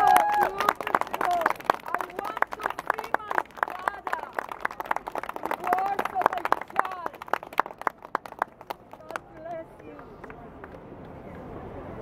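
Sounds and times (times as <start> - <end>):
crowd applause: 0.0 - 10.8.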